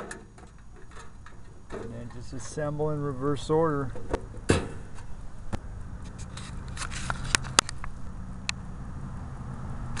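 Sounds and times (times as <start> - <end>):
camera handling rumble: 3.9 - 8.0.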